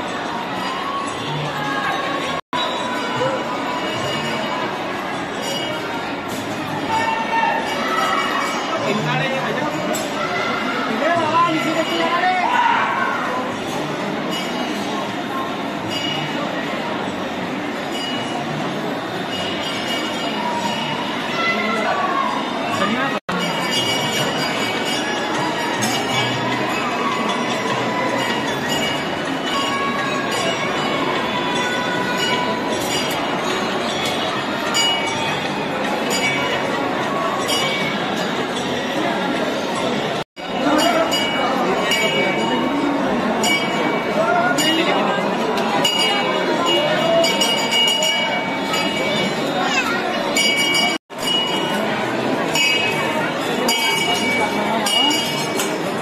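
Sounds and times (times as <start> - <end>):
crowd noise: 0.0 - 56.0
metal bells ringing: 0.0 - 56.0.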